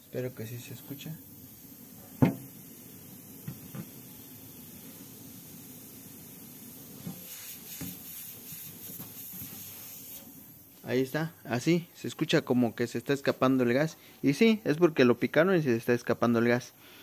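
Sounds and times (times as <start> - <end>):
gas hissing from freezer: 0.0 - 17.0.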